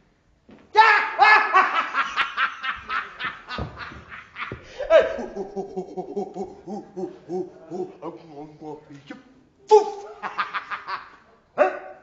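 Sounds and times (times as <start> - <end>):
person laughing loudly: 0.8 - 8.9, 9.7 - 11.2.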